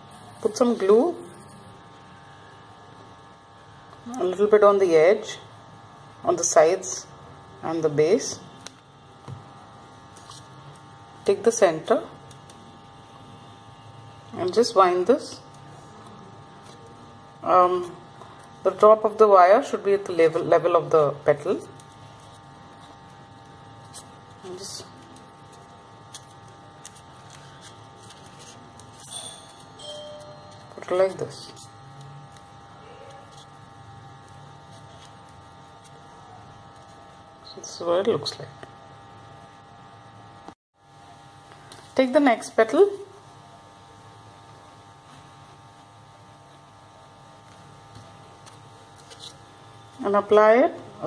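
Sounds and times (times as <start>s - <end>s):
electrical buzzing hum: 0.0s - 51.0s
crepe paper crinkling: 21.7s - 33.5s, 47.6s - 49.9s.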